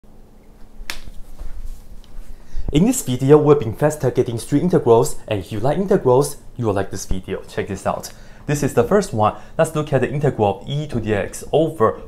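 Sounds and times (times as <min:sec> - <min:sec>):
soft footsteps: 0:00.4 - 0:02.9
sharp snap: 0:00.9 - 0:01.2.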